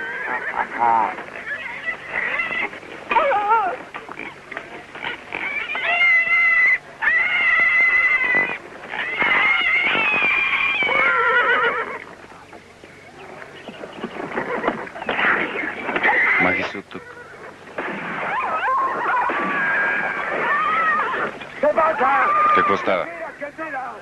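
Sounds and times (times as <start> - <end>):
dog whining: 0.0 - 4.4, 5.0 - 12.0.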